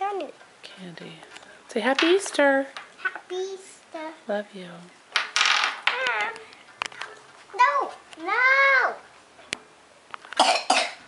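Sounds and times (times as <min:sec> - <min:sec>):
person coughing: 0:10.4 - 0:11.0.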